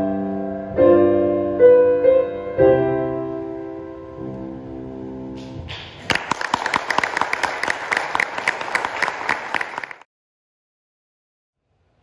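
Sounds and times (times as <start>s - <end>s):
audience applauding: 6.0s - 10.1s.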